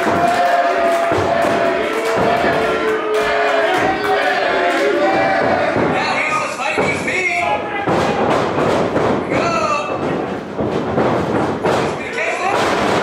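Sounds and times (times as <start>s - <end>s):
voices shouting: 0.0s - 6.4s
bodies slamming on ring canvas: 0.0s - 13.0s.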